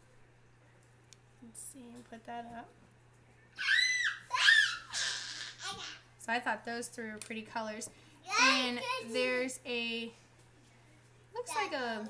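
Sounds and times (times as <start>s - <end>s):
child squealing: 3.6s - 6.0s.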